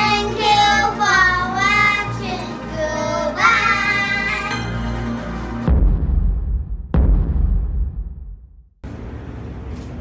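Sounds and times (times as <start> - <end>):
children singing together: 0.0 - 4.8
background music: 0.0 - 8.0.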